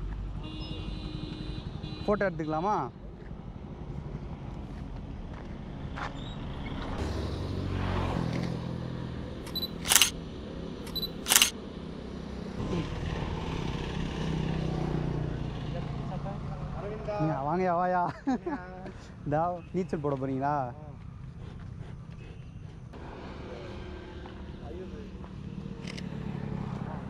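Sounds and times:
outdoor road noise: 0.0s - 27.0s
passing vehicle rumble: 6.4s - 17.1s, 23.0s - 27.0s
camera shutter click: 9.5s - 10.1s, 10.9s - 11.5s
short high beep: 9.5s - 10.1s.

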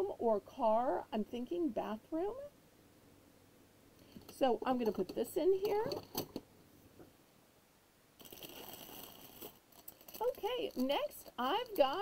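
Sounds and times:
faint rustle: 8.2s - 12.0s.

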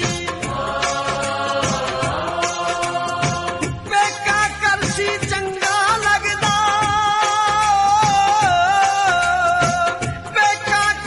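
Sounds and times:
percussion strokes: 0.0s - 11.0s.

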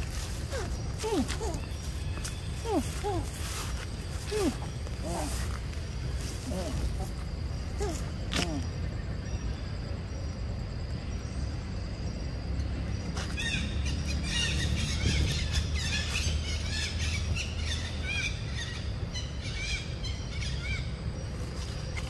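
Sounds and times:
birds chirping: 0.0s - 22.0s
steady low rumble: 0.0s - 22.0s.

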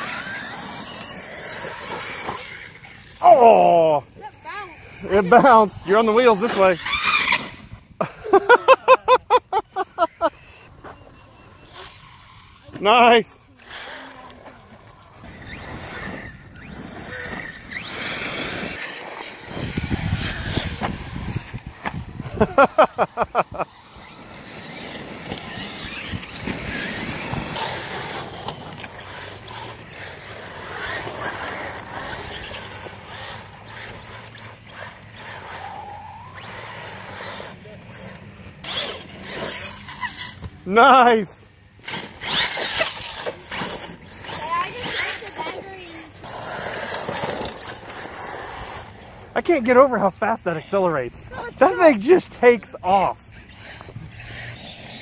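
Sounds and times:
people laughing: 8.0s - 10.4s, 22.2s - 23.7s.

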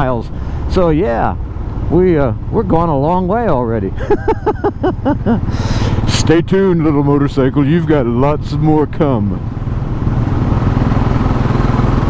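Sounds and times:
man laughing: 3.9s - 6.1s
motorcycle engine running: 8.1s - 12.0s.

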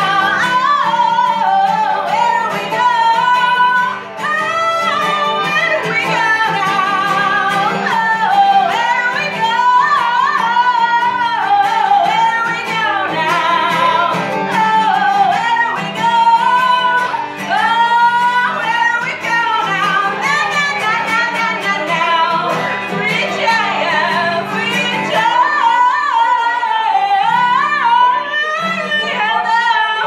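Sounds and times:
strummed acoustic guitar: 0.0s - 30.0s
woman singing with vibrato: 0.0s - 30.0s.

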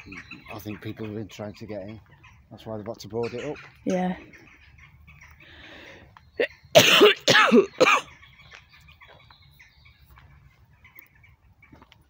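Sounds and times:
person coughing: 6.8s - 8.1s.

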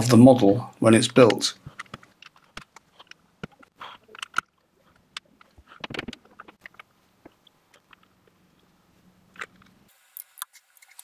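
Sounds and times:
plastic bricks clicking: 1.3s - 8.1s.

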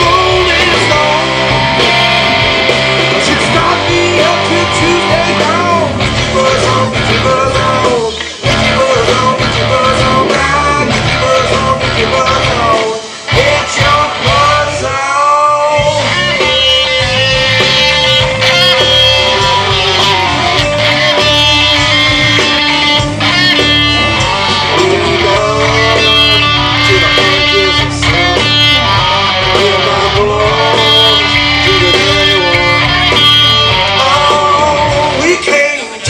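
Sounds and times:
lead electric guitar bending notes: 0.0s - 14.8s, 15.8s - 36.0s
country-rock band playing: 0.0s - 36.0s.

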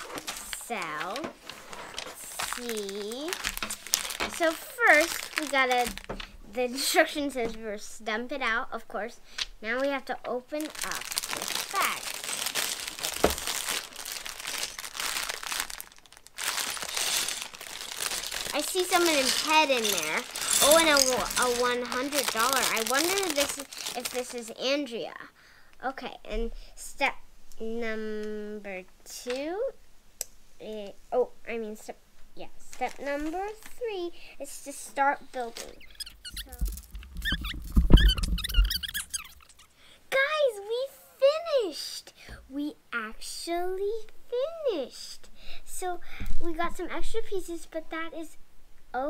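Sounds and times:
plastic bag crinkling: 0.0s - 6.8s, 10.5s - 24.6s, 32.6s - 34.1s, 34.7s - 39.7s
sped-up child's chatter: 11.6s - 12.1s
low thumps: 36.5s - 38.7s.

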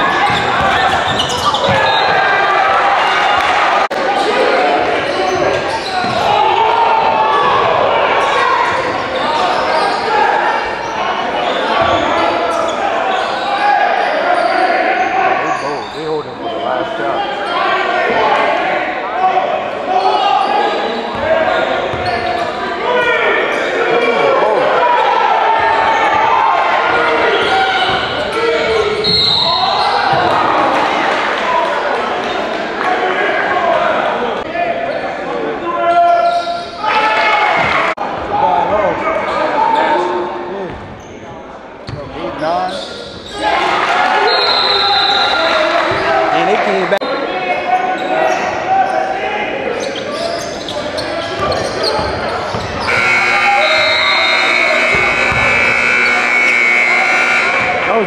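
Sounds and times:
shouts and chatter echoing: 0.0s - 58.0s
basketball bouncing on hardwood: 54.9s - 55.5s.

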